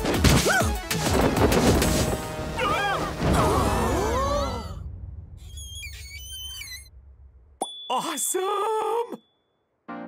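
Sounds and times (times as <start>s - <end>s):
low rumble: 3.2s - 7.6s
cartoon whistling tones: 5.4s - 6.9s.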